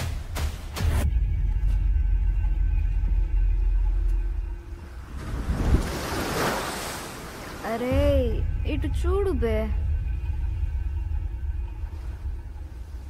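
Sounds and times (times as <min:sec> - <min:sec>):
ocean surf rumble: 0:04.6 - 0:13.0
wave washing in: 0:04.9 - 0:08.0.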